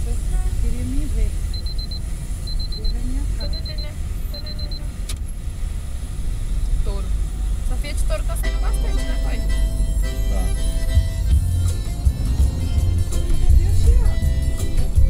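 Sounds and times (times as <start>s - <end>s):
car road and engine rumble: 0.0s - 15.0s
high electronic beeps: 1.5s - 4.9s
music: 8.4s - 15.0s.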